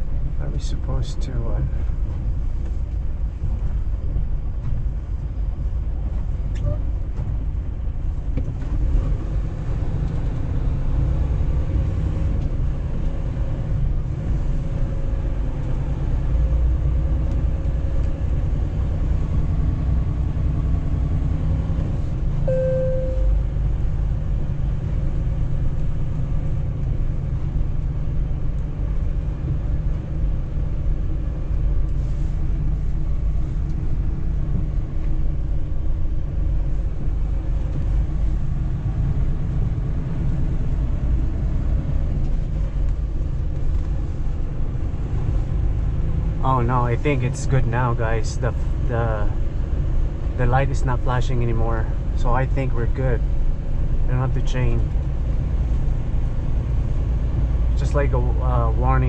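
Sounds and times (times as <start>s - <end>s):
diesel truck engine rumble: 0.0s - 59.0s
road noise: 0.0s - 59.0s
short beep: 22.5s - 23.4s.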